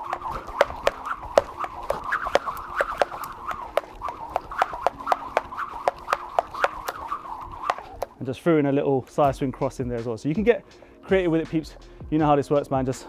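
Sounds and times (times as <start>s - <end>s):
skipping rope ticking on mat: 0.0s - 8.1s
spinning rope swoosh: 0.0s - 8.2s.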